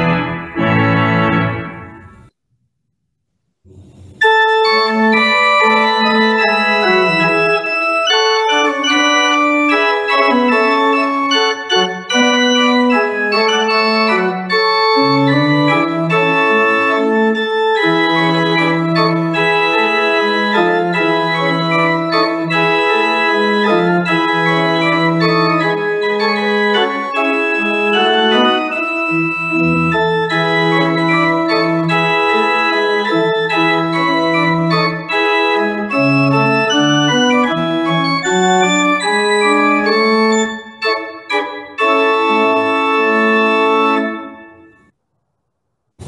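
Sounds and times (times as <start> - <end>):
pipe organ playing: 0.0 - 2.3, 4.2 - 44.9.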